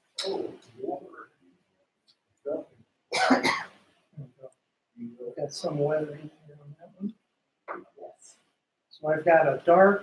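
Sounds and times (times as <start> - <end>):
person coughing: 3.1 - 3.7.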